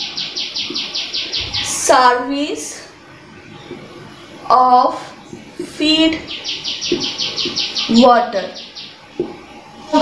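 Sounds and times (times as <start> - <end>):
bird chirping rapidly: 0.0 - 2.1, 5.3 - 9.5.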